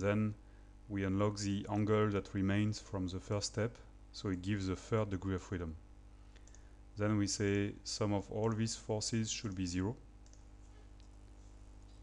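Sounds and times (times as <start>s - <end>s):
low steady hum: 0.0s - 12.0s
computer mouse clicks: 6.4s - 6.7s, 10.2s - 11.2s.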